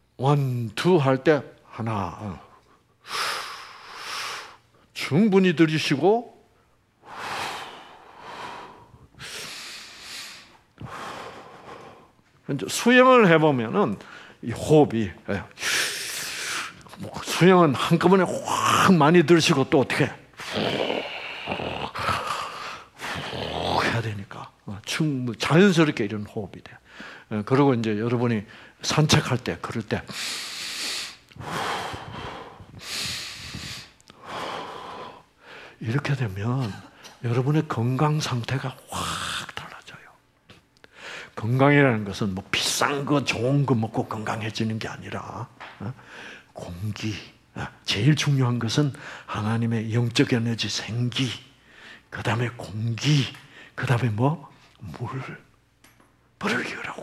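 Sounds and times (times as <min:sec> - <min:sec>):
man breathing deeply: 0:07.0 - 0:12.2, 0:20.4 - 0:23.4, 0:30.1 - 0:35.8, 0:40.8 - 0:41.3.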